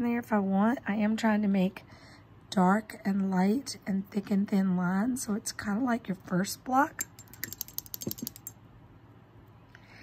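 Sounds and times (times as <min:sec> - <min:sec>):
paintbrush rattling in plastic cup: 0:07.0 - 0:08.5.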